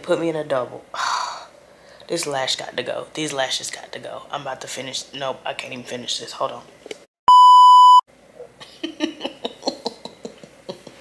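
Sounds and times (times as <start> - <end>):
censor bleep tone: 7.3 - 8.0.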